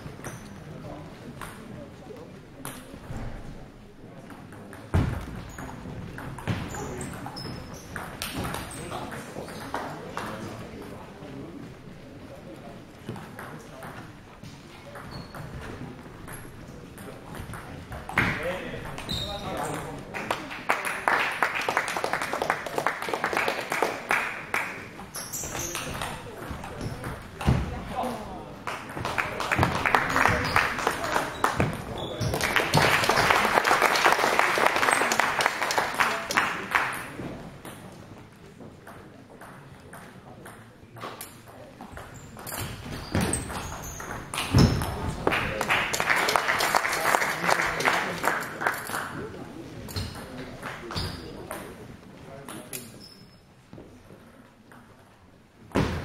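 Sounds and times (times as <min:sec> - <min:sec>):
spectators clapping: 0:20.1 - 0:25.0, 0:28.6 - 0:37.2, 0:45.2 - 0:49.3.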